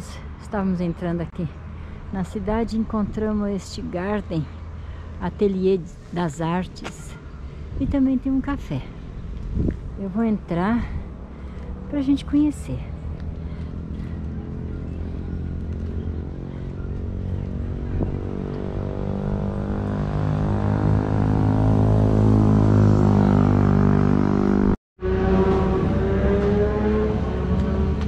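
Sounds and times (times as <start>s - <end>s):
diesel engine droning: 10.0s - 28.0s.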